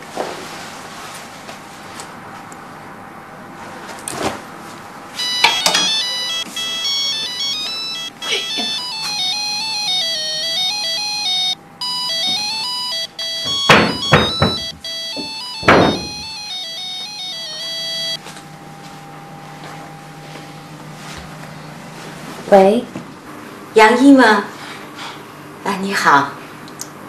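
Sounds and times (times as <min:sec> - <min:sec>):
phone ringtone melody: 0:05.2 - 0:18.2
sharp knocks: 0:13.4 - 0:16.4.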